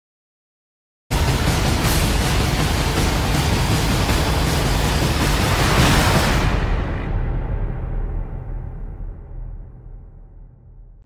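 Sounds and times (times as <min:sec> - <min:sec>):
low rumble: 0:01.1 - 0:11.0
rushing whoosh effect: 0:01.7 - 0:08.5.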